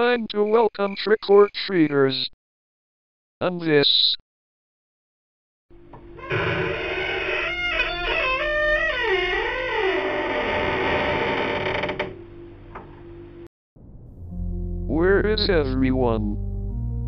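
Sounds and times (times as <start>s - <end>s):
dense drone: 12.1s - 17.0s.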